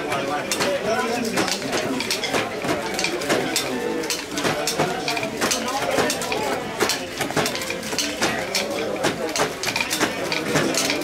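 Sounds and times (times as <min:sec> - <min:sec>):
loom knocking and clacking: 0:00.0 - 0:11.0.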